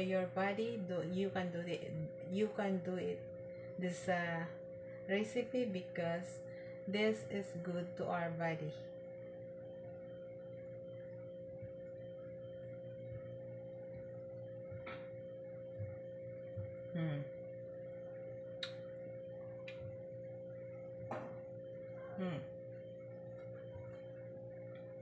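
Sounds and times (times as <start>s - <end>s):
electrical hum with high tone: 0.0s - 25.0s
person humming mmm: 16.8s - 17.5s, 22.0s - 22.6s.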